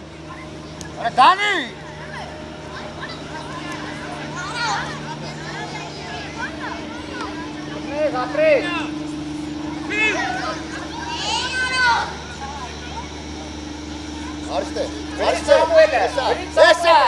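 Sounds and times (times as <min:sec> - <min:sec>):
steady low hum: 0:00.0 - 0:17.0
high-pitched shouts: 0:09.7 - 0:12.7.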